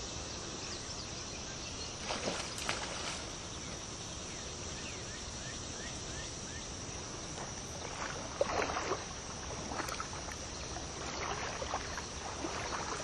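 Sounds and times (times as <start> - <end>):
insects buzzing: 0.0 - 13.0
fish thrashing water: 2.0 - 3.4, 7.8 - 13.0.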